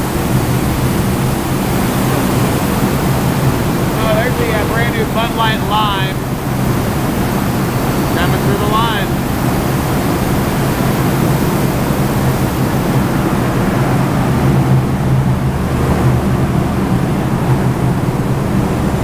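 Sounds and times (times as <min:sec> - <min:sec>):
low steady hum: 0:00.0 - 0:12.3.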